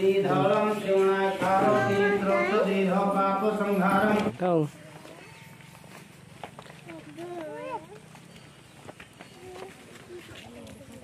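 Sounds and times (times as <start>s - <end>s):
man chanting: 0.0s - 4.3s.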